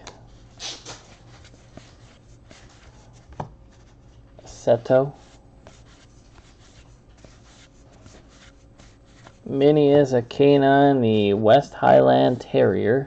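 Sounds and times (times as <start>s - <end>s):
cards sliding and scraping: 0.0s - 9.5s.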